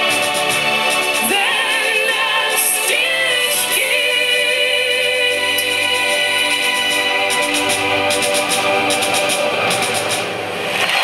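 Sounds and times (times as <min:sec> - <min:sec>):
woman singing: 0:01.2 - 0:07.9.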